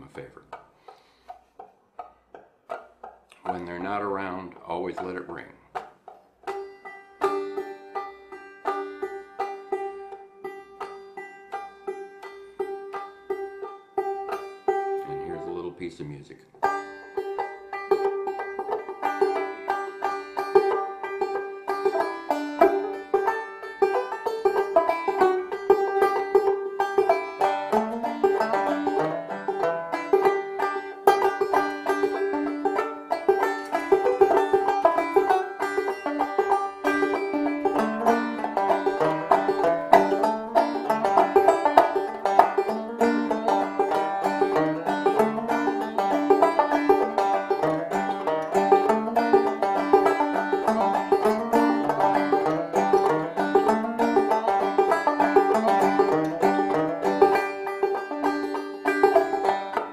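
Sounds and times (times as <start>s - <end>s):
banjo plucked notes: 0.0s - 59.9s
high banjo drone note: 33.4s - 59.9s.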